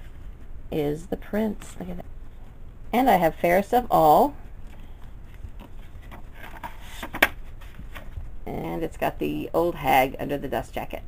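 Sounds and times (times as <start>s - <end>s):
paper rubbing and rustling: 5.2s - 8.3s.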